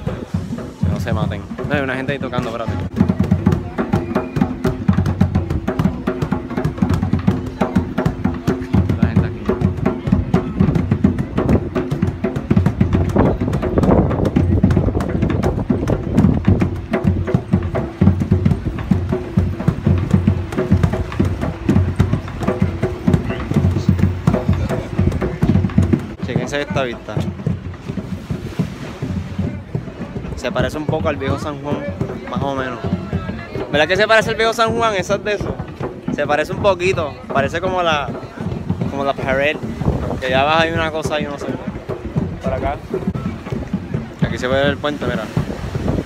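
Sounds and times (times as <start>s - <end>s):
fast drum beat: 0.0s - 46.0s.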